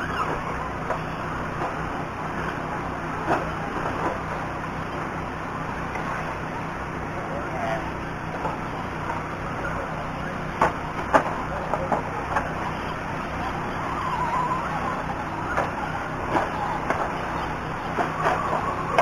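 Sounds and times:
distant voices: 0:00.0 - 0:19.0.

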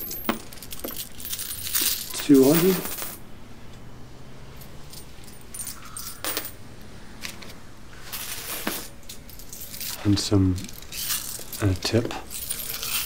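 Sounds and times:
coins clinking: 0:00.0 - 0:03.2, 0:04.6 - 0:06.6, 0:08.1 - 0:13.0.

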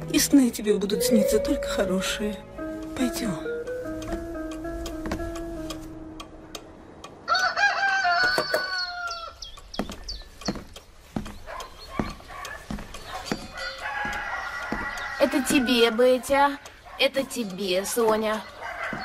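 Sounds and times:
soft music: 0:00.0 - 0:07.2
rooster crowing: 0:07.2 - 0:09.4, 0:13.6 - 0:16.0, 0:18.6 - 0:19.0.

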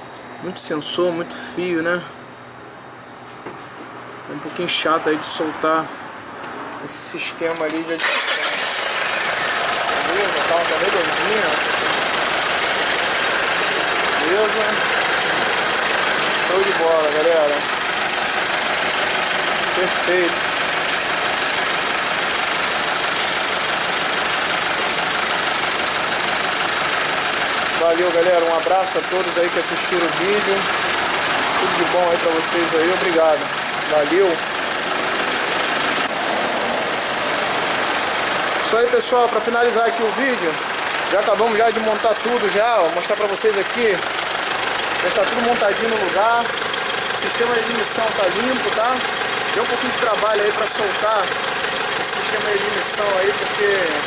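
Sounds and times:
diesel engine idling: 0:08.0 - 0:54.0.

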